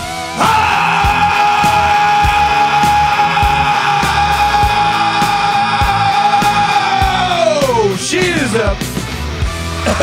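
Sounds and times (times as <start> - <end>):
rock music with drums: 0.0 - 10.0
man singing: 0.4 - 8.6.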